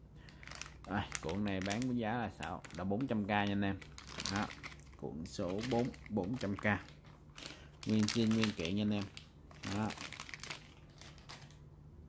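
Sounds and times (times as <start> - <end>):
plastic packet crinkling: 0.2 - 11.6.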